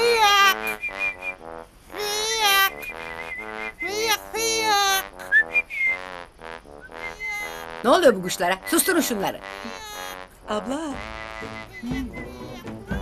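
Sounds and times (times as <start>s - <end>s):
men imitating birdsong: 11.2s - 13.0s.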